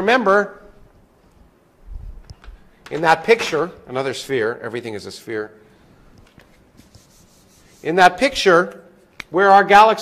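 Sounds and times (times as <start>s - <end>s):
man talking: 2.9s - 5.6s, 7.8s - 10.0s
marker pen scratching on paper: 6.8s - 7.9s.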